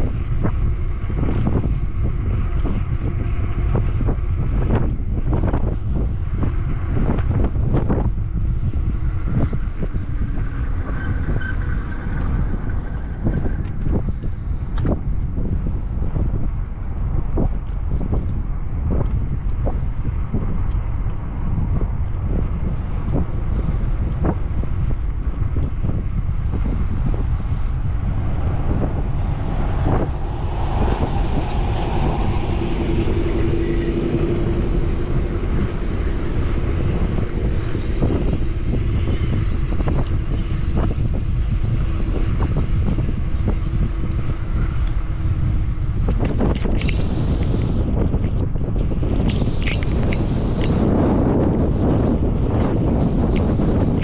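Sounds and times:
engine hum: 0.0s - 54.0s
wind rumbling on microphone: 0.0s - 54.0s.

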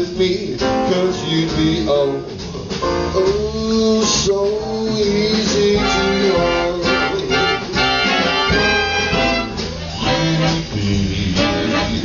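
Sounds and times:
swing band playing: 0.0s - 12.0s.

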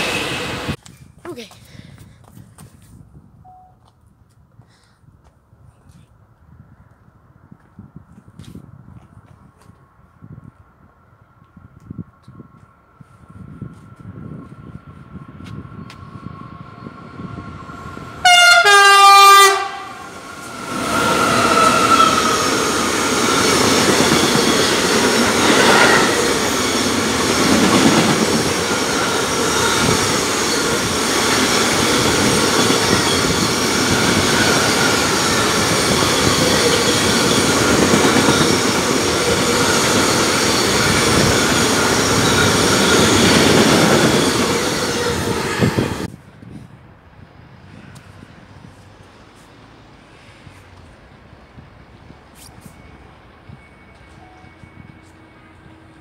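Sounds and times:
locomotive horn: 18.2s - 20.2s
train wheels rumbling and clattering: 20.2s - 46.8s.

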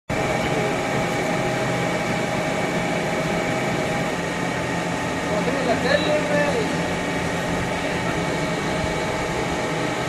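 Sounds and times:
steady mechanical drone: 0.1s - 10.0s.

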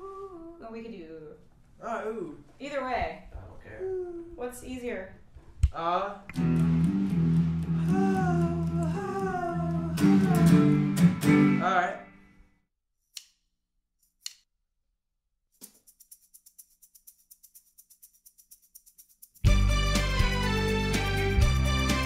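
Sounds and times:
woman singing ooh: 0.0s - 1.0s, 7.8s - 10.8s
faint fast high ticking: 15.6s - 19.5s.

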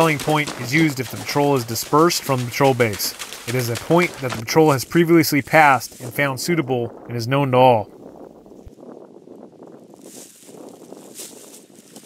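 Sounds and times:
footsteps crunching dry leaves: 0.0s - 4.8s, 9.9s - 12.0s.

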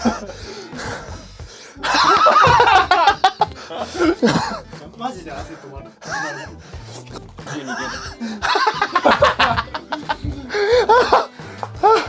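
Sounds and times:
men laughing hard: 0.0s - 1.1s, 1.8s - 4.7s, 6.0s - 6.6s, 7.5s - 12.0s.

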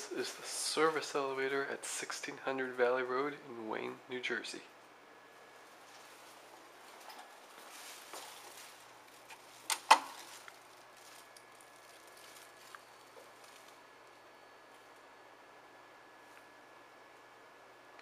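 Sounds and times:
faint high whine: 10.2s - 18.0s.

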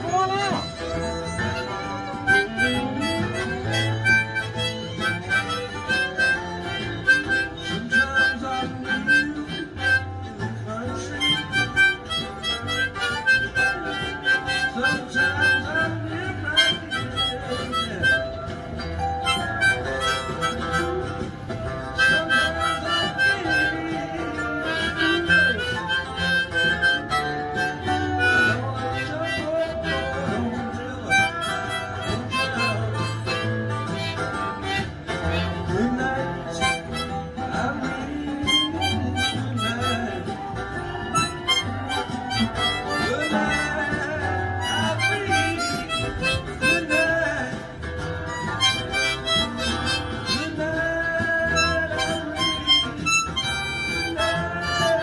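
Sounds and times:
backing music with bass pulse: 0.0s - 55.0s
harmonica bending notes: 0.0s - 55.0s.

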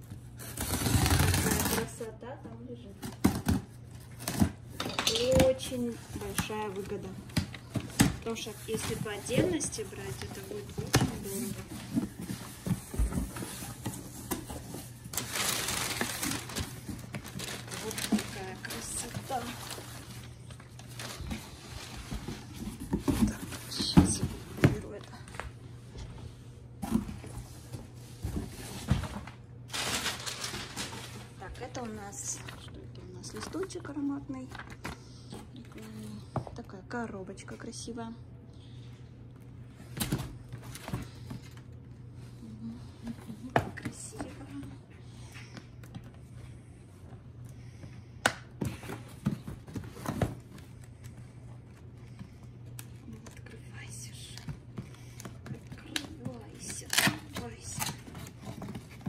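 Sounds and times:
steady low hum: 0.0s - 59.0s
papery rustle: 28.6s - 31.5s.

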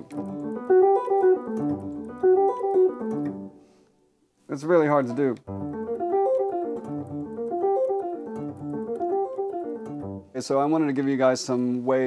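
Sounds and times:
electric guitar arpeggio: 0.0s - 3.6s, 5.0s - 10.3s.

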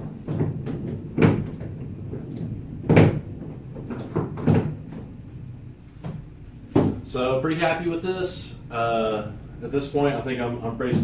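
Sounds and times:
sharp plastic clunks and knocks: 0.0s - 5.1s, 6.0s - 7.0s
quiet handling noise: 9.6s - 11.0s.

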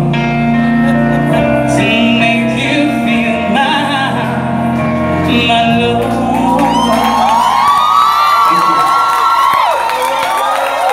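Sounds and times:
karaoke backing music: 0.0s - 9.7s
audience cheering and whooping: 5.8s - 10.9s.

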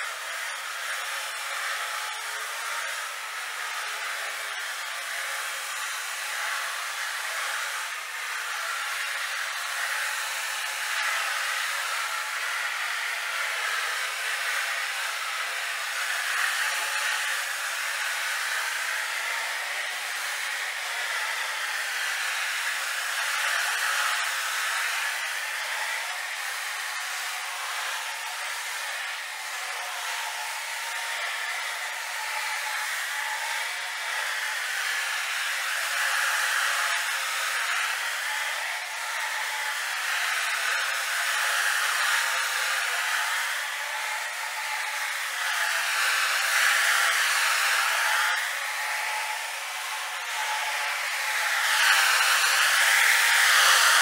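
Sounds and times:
floor machine motor whirring: 0.0s - 54.0s.

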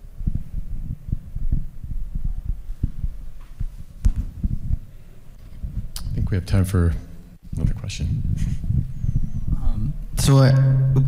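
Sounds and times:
irregular low thumps: 0.0s - 11.0s
low rumble: 0.0s - 11.0s.

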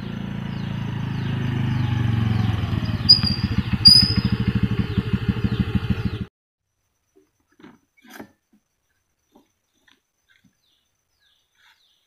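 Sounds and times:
motor scooter engine: 0.0s - 6.3s
short high squeaks: 3.0s - 4.5s.

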